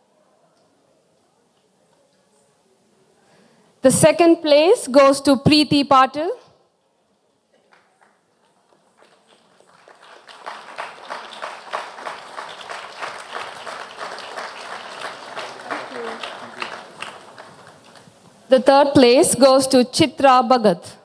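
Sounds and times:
audience applauding: 7.6 - 18.2.

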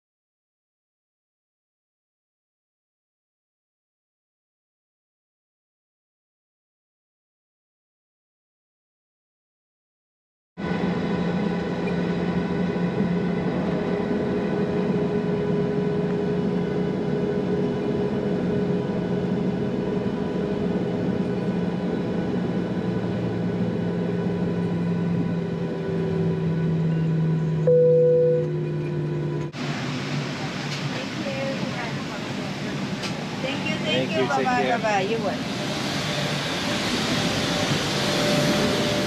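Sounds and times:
jet engines idling hum: 10.6 - 39.0
short single tone: 26.9 - 29.5
held tones: 27.6 - 29.5.

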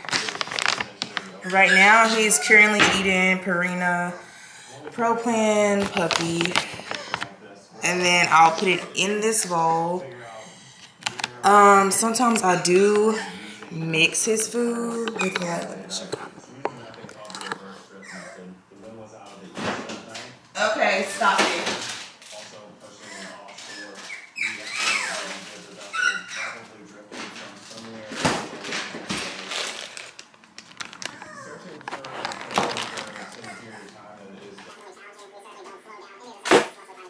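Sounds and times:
dry food bag clicks and rustles: 0.0 - 1.4, 28.6 - 33.6
puppy whining: 1.2 - 2.8, 17.6 - 18.6, 23.1 - 26.7, 31.0 - 31.8, 32.9 - 34.1
faint background voice: 31.0 - 37.0.

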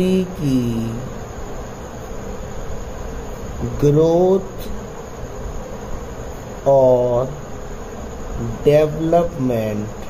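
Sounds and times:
man speaking: 0.0 - 1.2, 3.6 - 4.8, 6.6 - 7.4, 8.4 - 10.0
even hiss: 0.0 - 10.0
steady buzzing hum: 0.0 - 10.0.

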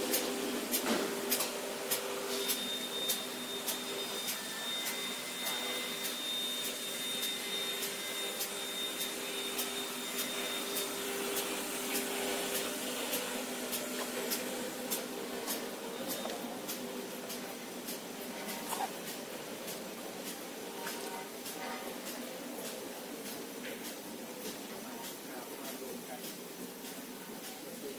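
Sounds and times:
machine humming and whirring: 0.0 - 27.9.

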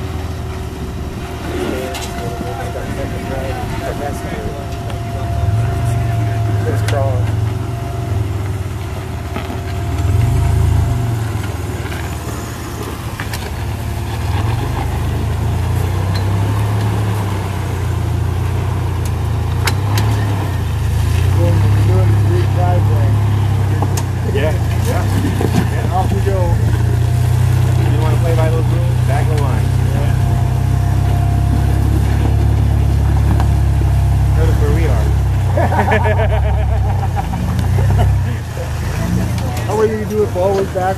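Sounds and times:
truck engine at low revs: 0.0 - 40.9.

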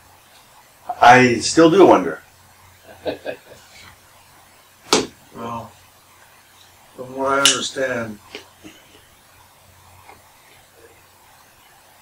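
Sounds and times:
person chuckling: 2.9 - 3.8
sharp knock: 4.9 - 5.2.

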